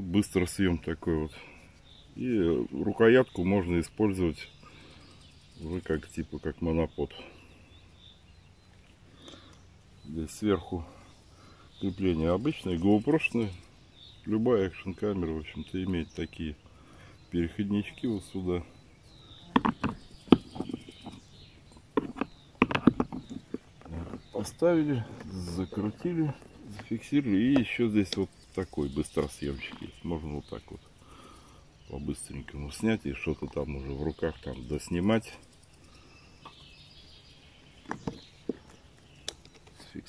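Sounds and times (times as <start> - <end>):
faint birdsong: 0.0 - 40.0
hard plastic clicks and knocks: 22.0 - 23.6.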